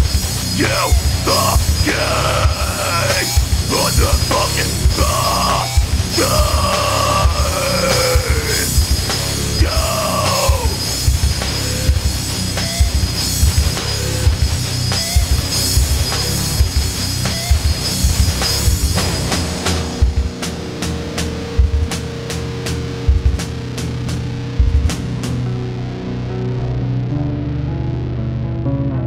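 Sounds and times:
heavy metal band playing: 0.0s - 28.4s.

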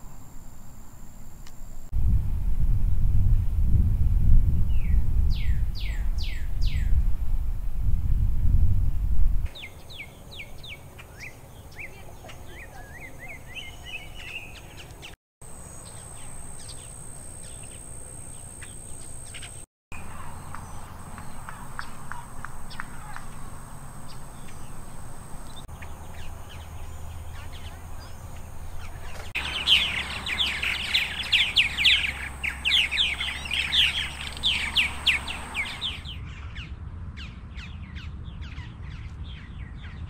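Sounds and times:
steady high-pitched whine: 0.0s - 3.2s
loud low rumble: 2.0s - 9.5s
birds chirping and calling: 9.5s - 40.0s
falling whistled bird calls: 24.0s - 36.2s.

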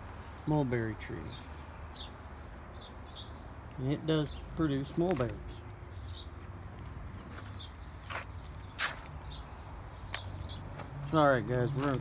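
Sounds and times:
birds chirping: 0.0s - 12.0s
footsteps on mulch: 4.2s - 12.0s.

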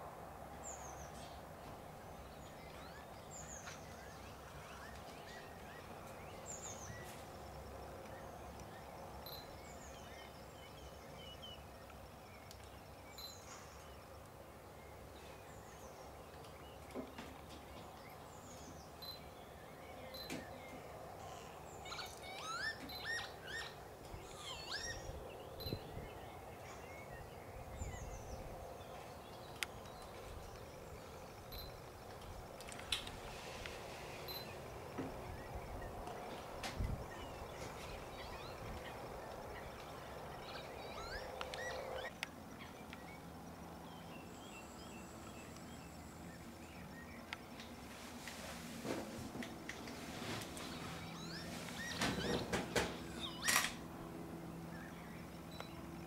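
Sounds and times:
outdoor background noise: 0.0s - 56.0s
small birds chirping: 0.6s - 47.9s, 50.1s - 56.0s.

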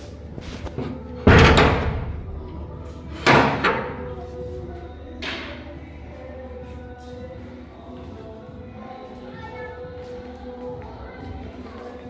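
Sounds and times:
wooden door banging shut: 1.2s - 2.5s.

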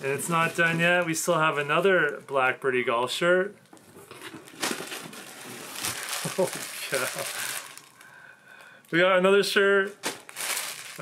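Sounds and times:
plastic packaging crinkling: 3.7s - 8.2s, 9.9s - 11.0s.

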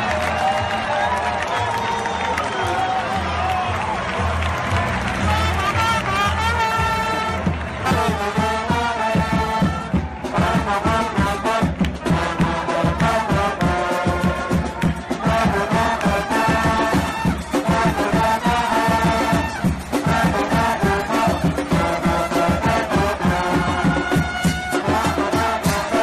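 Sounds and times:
brass band playing: 2.9s - 26.0s
bass drum beat: 5.0s - 26.0s.

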